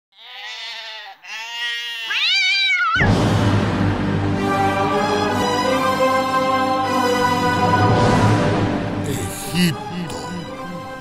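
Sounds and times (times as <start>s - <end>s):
pitched animal cries: 0.1s - 3.1s
loud music: 3.1s - 11.0s.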